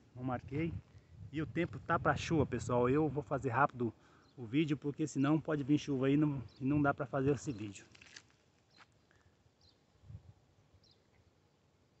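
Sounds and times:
distant bird chirps: 4.0s - 7.9s, 10.8s - 11.6s.

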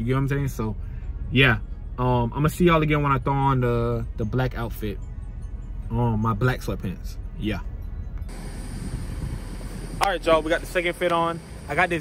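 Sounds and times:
low rumble and hiss: 0.0s - 12.0s
car cabin hum: 8.1s - 12.0s
thin high whine: 8.2s - 12.0s.

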